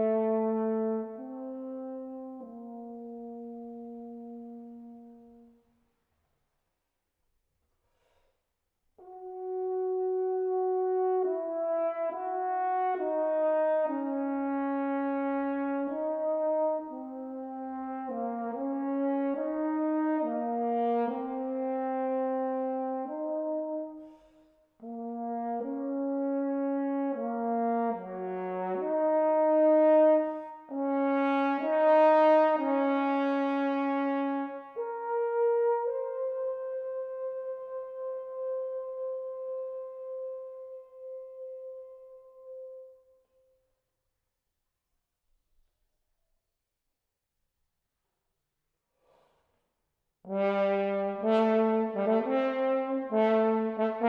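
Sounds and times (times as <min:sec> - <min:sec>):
french horn melody: 0:00.0 - 0:05.7, 0:09.0 - 0:43.2, 0:50.3 - 0:54.0.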